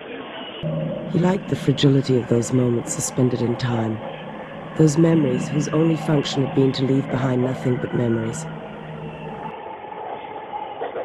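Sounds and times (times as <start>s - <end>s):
train running rumble: 0.6s - 9.5s.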